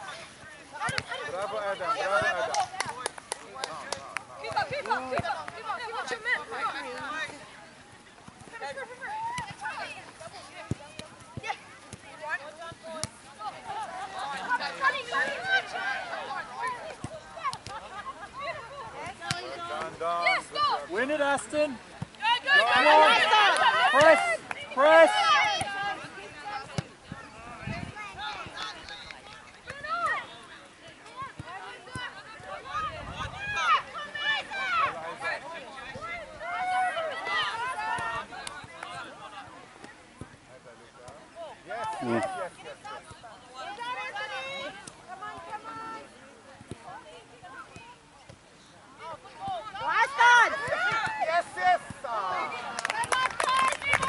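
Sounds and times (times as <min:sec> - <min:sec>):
players and spectators shouting: 0:00.0 - 0:03.6, 0:08.5 - 0:39.7, 0:41.2 - 0:46.2, 0:49.0 - 0:54.0.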